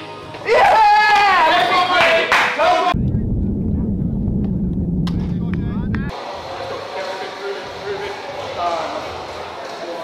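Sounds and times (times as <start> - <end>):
low rumble outdoors: 2.9 - 6.1.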